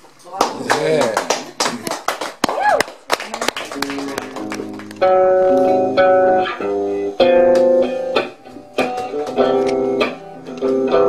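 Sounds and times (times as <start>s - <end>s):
audience clapping: 0.4s - 5.3s, 8.8s - 10.2s.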